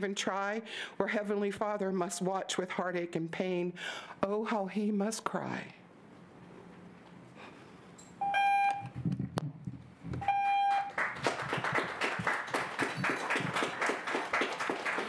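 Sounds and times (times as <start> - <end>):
electronic timer beeps: 8.2 - 9.0, 10.2 - 10.9
audience applauding: 10.7 - 15.0.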